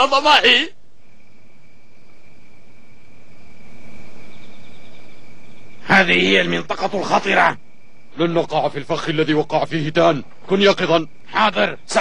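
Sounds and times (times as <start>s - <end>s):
crickets chirping: 0.0s - 12.0s
man speaking: 5.8s - 7.6s, 8.2s - 12.0s.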